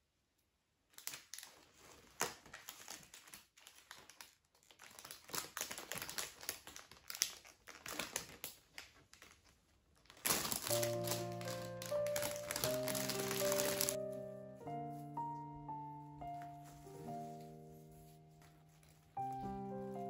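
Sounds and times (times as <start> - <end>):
cellophane and paper crinkling: 0.9 - 14.0, 16.2 - 20.0.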